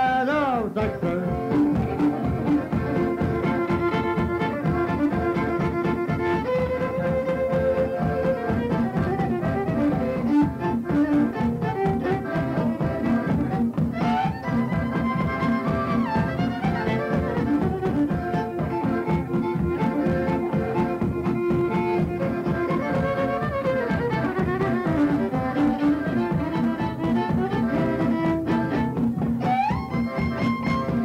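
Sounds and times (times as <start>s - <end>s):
accordion: 0.0s - 31.0s
fiddle: 0.0s - 31.0s
strummed guitar: 0.0s - 31.0s.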